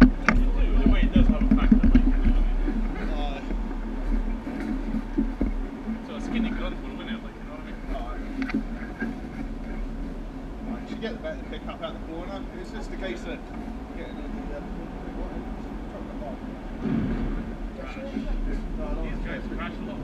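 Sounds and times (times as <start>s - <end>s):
go-kart engines running: 0.0s - 20.0s
indistinct voices: 0.0s - 20.0s.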